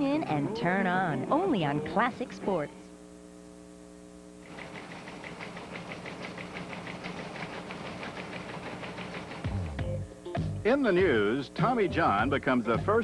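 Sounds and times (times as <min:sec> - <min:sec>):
electrical mains hum: 0:00.0 - 0:13.0
fast even clicking: 0:04.5 - 0:09.6.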